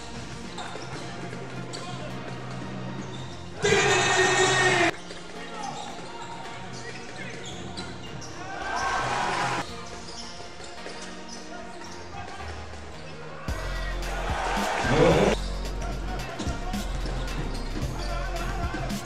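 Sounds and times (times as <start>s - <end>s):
background music: 0.0s - 19.0s
voices in arena: 0.0s - 19.0s.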